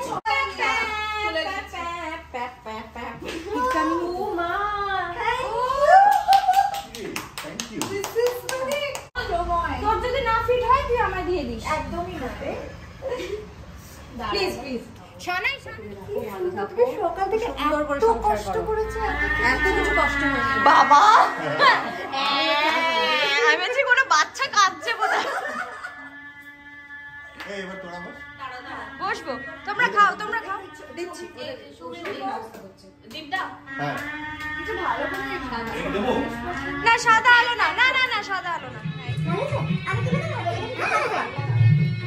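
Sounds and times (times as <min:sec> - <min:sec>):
woman wailing: 0:18.9 - 0:23.7
high voice singing: 0:25.9 - 0:31.0, 0:33.6 - 0:37.2.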